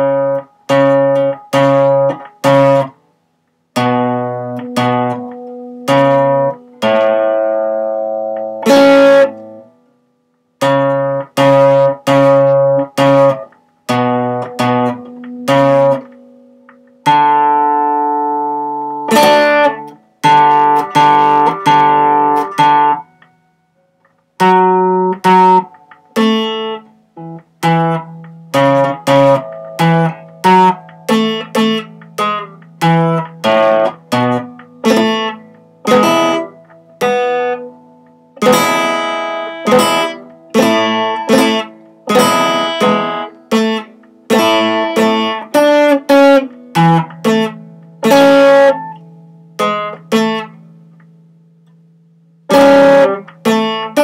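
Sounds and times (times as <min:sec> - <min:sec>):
acoustic guitar strummed chords: 0:00.0 - 0:54.0.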